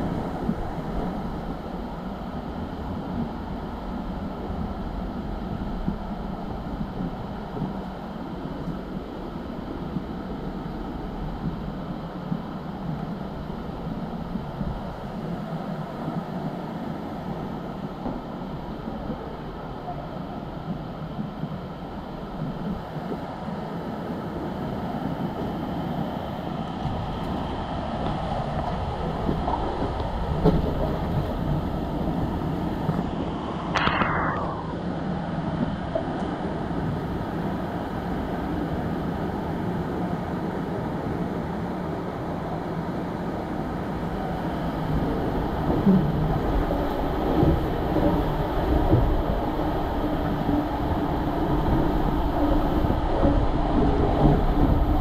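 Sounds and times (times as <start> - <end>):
water rushing down slide tube: 24.2 - 55.0
brief high-pitched sound: 33.8 - 34.9.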